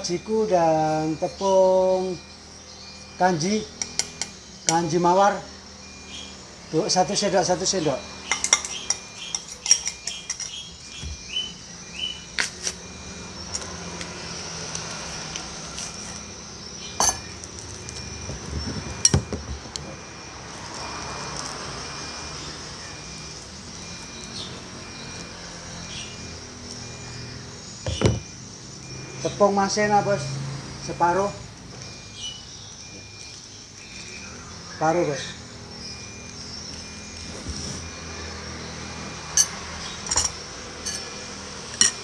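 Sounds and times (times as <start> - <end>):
utensils and bowls knocking: 8.3 - 10.6, 17.0 - 17.3, 27.9 - 28.2.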